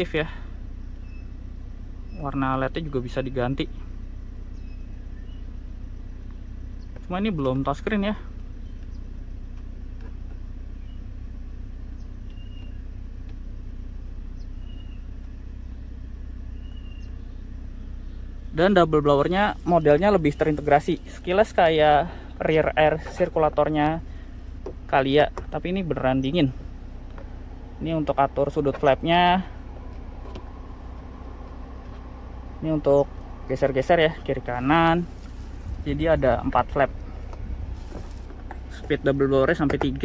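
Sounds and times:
car cabin hum idling: 0.0 - 40.0
faint high chirps: 1.0 - 1.4, 4.5 - 5.6
air conditioning blower: 26.5 - 40.0.

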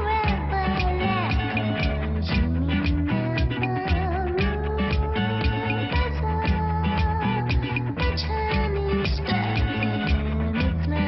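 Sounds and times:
bass and electric guitar: 0.0 - 11.0
woman singing: 0.0 - 11.0
drums steady beat: 0.2 - 10.7.

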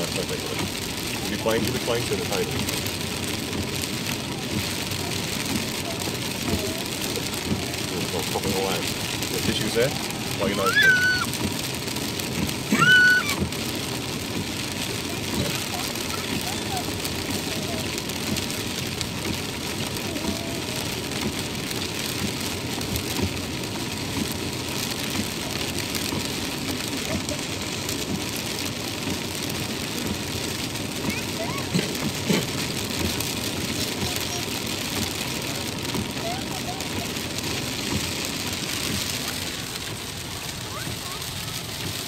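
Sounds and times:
rain on car windscreen and roof: 0.0 - 42.0
road noise inside moving car: 0.0 - 42.0.

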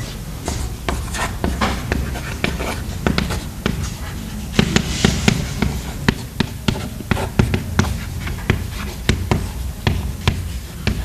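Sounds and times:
chalk scraping: 0.0 - 11.0
chalk clicking on blackboard: 0.5 - 11.0.

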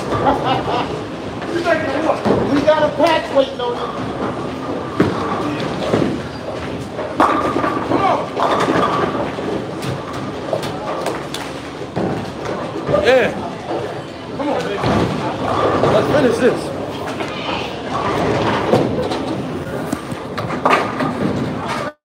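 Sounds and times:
bowling balls rolling: 0.0 - 22.0.

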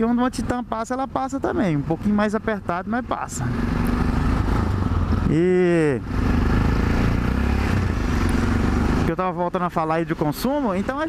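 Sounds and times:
motorcycle engine running: 0.0 - 11.0
wind and road rush: 0.0 - 11.0.

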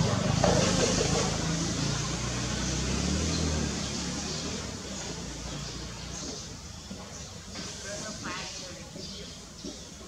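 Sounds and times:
vehicle engine running: 0.0 - 7.2.

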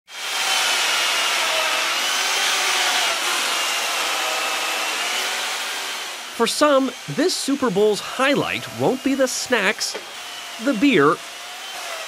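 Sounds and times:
power tool motor whine: 0.1 - 12.0.

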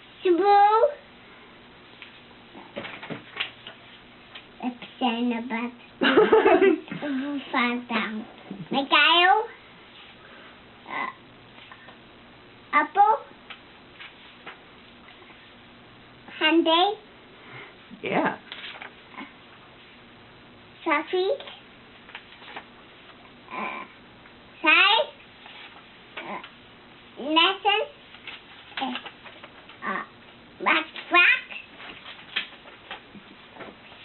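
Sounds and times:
toddler speaking: 0.2 - 1.0, 4.6 - 5.8, 7.4 - 9.6, 10.9 - 11.2, 12.7 - 13.3, 16.4 - 17.0, 20.8 - 21.5, 23.5 - 24.0, 24.6 - 25.2, 26.2 - 26.5, 27.2 - 28.0, 29.8 - 31.6.

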